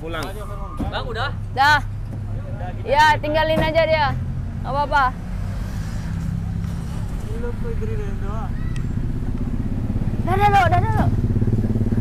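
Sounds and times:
truck engine idling: 6.2s - 12.0s.

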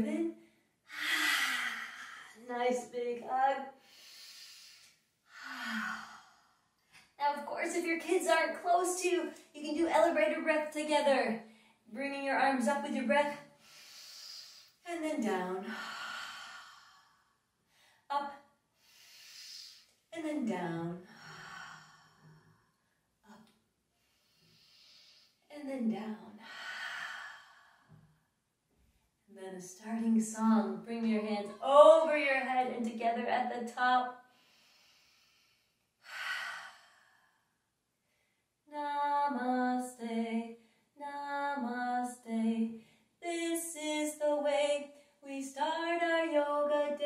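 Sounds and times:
woman breathing: 0.4s - 2.5s, 3.7s - 7.2s, 13.5s - 14.8s, 15.6s - 18.1s, 18.7s - 20.1s, 21.0s - 25.5s, 26.4s - 28.1s, 34.2s - 38.6s.

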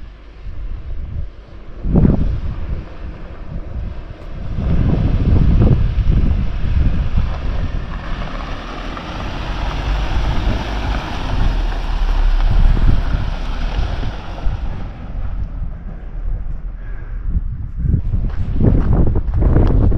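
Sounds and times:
vehicle driving on dirt trail: 0.0s - 19.9s
wind buffeting microphone: 0.0s - 19.9s.

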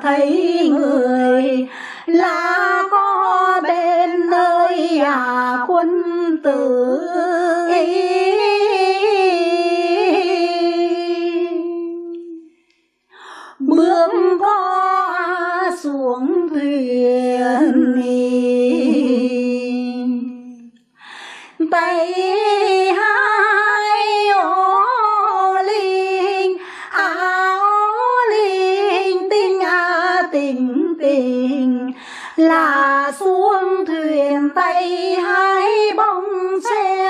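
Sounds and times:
woman singing unaccompanied: 0.0s - 12.5s, 13.2s - 20.7s, 21.5s - 37.0s
singer breathing in: 1.7s - 2.1s, 12.5s - 13.6s, 21.0s - 21.6s, 26.6s - 26.9s, 32.0s - 32.4s.

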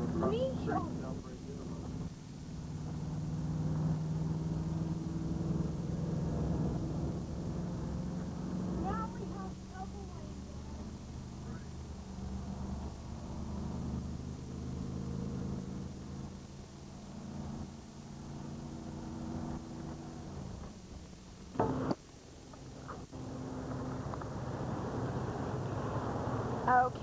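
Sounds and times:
motorhome engine drone: 0.0s - 27.0s
road noise: 0.0s - 27.0s.

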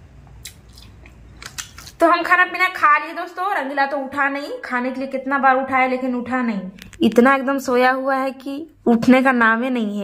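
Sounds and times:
person chewing: 0.2s - 2.0s.

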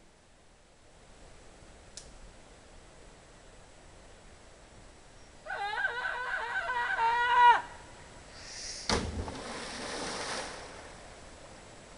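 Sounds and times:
body splashing into water: 8.9s - 11.0s.

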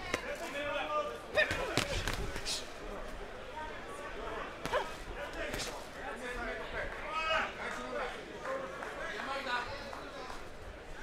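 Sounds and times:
voices in arena: 0.0s - 11.0s.

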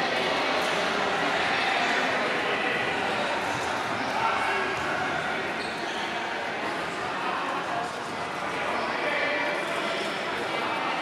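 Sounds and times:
echoing chatter of many voices: 0.0s - 11.0s.

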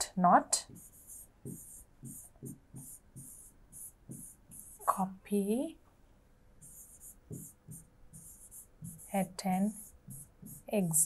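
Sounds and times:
pen scratching on whiteboard: 0.6s - 5.0s, 6.6s - 11.0s.

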